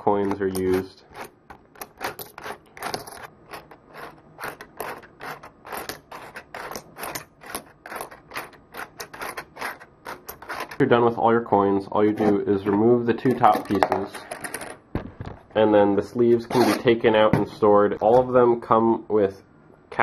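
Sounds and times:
coin sorter clicking and rattling: 0.2s - 10.8s
coins tumbling and dropping: 0.2s - 10.8s, 13.6s - 14.8s.

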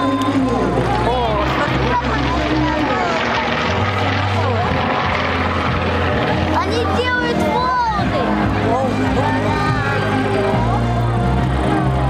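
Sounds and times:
propeller planes droning overhead: 0.0s - 12.0s.

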